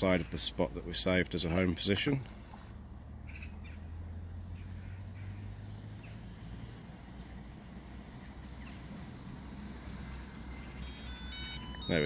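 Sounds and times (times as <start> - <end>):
electronic beeps: 10.6 - 12.0.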